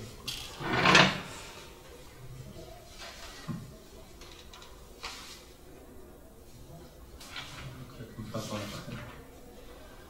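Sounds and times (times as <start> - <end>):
paper rustling: 4.2 - 5.5.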